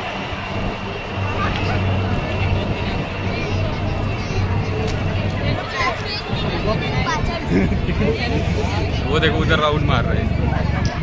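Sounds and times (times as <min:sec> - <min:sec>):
crowd chatter: 0:00.0 - 0:11.0
helicopters flying overhead: 0:00.0 - 0:11.0.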